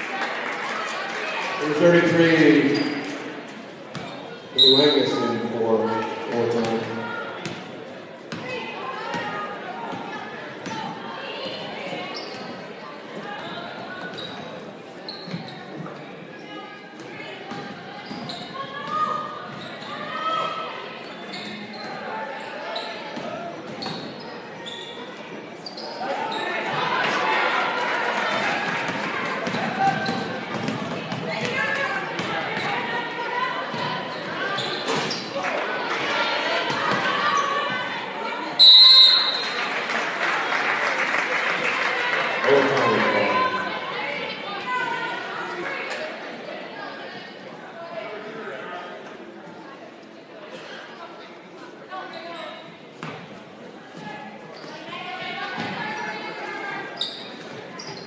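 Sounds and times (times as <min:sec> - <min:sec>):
referee's whistle blast: 0:38.6 - 0:39.6.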